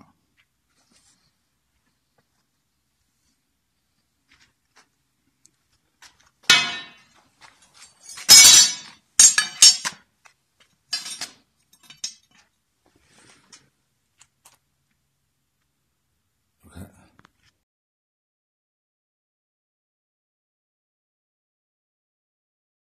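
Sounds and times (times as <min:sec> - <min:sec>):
steel tubes clattering on concrete: 0:06.4 - 0:10.1, 0:10.9 - 0:12.5.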